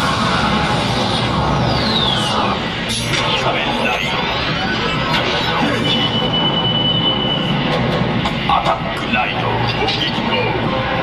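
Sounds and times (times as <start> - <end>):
action soundtrack over loudspeakers: 0.0 - 11.0.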